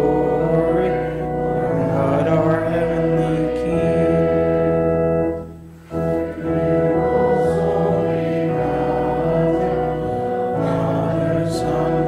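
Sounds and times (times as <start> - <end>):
congregation singing a hymn: 0.0 - 12.0
organ accompaniment: 0.0 - 12.0.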